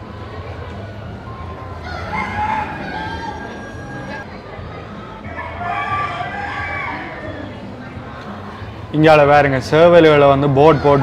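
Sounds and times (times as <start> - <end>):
rooster crowing: 1.8 - 4.2.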